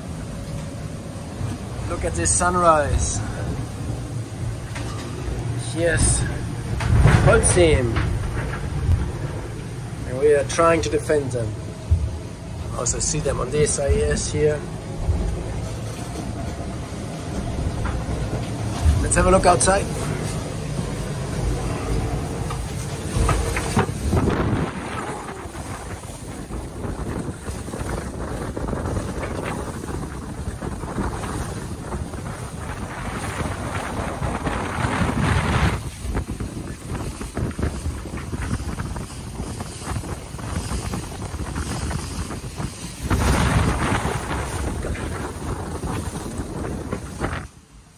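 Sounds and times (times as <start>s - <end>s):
water rushing along hull: 0.0s - 47.9s
wind buffeting microphone: 0.0s - 47.9s.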